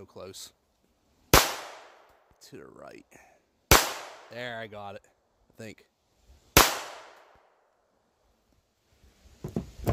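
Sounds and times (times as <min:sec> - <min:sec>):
pistol shot echo: 0:01.3 - 0:02.1, 0:03.7 - 0:04.3, 0:06.6 - 0:07.4.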